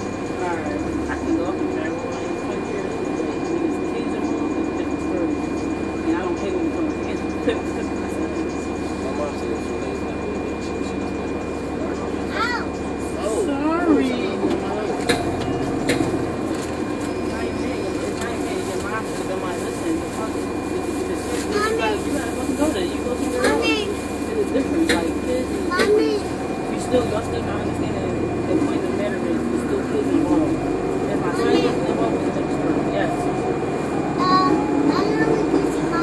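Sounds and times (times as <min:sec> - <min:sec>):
bus engine rumble: 0:00.0 - 0:36.0
passengers talking: 0:00.0 - 0:36.0.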